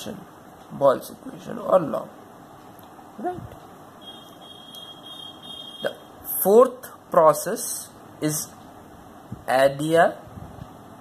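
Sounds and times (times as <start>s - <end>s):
faint high-pitched whine: 3.2s - 8.6s.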